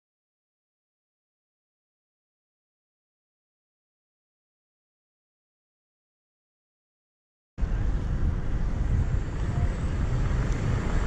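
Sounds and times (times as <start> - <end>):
city traffic noise: 7.6 - 11.0
wind rumble on microphone: 7.6 - 11.0.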